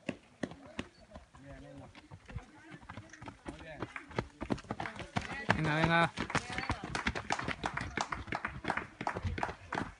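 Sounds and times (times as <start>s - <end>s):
running footsteps on dirt path: 0.0s - 9.9s.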